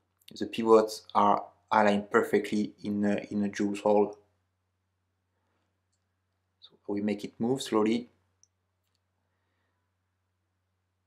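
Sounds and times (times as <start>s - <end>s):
faint small clicks: 8.4s - 9.1s.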